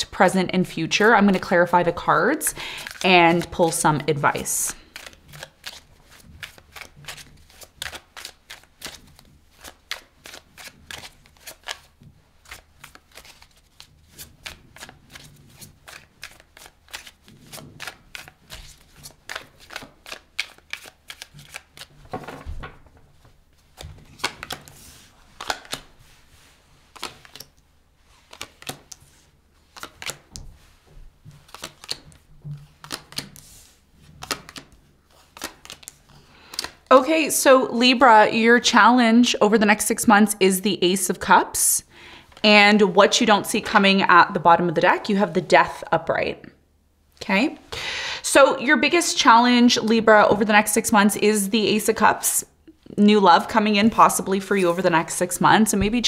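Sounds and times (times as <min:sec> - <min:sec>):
cards being shuffled: 0:01.0 - 0:36.9.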